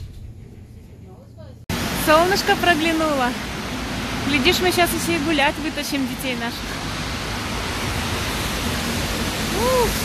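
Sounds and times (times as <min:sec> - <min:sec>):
city street rushing noise: 0:01.1 - 0:10.0.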